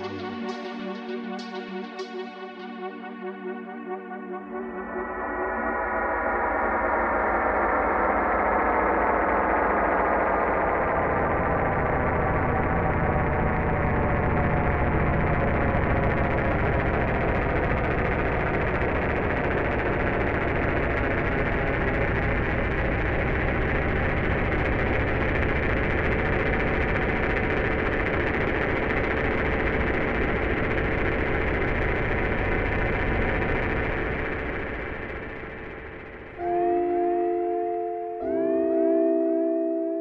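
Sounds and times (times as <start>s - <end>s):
noisy synthesizer drone: 0.0s - 40.0s
steady held synth tone: 0.0s - 40.0s.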